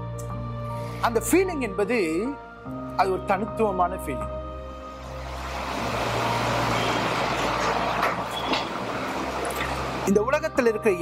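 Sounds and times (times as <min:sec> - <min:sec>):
passing vehicle rushing: 0:04.8 - 0:10.1.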